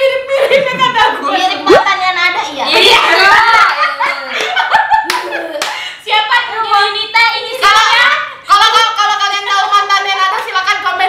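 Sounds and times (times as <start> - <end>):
young women laughing: 3.1 - 5.8
sharp hand claps: 4.4 - 5.8.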